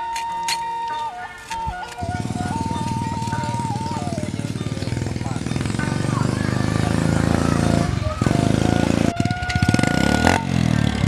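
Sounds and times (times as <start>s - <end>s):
background music high melody: 0.0s - 11.0s
motorcycle engine running: 2.0s - 11.0s.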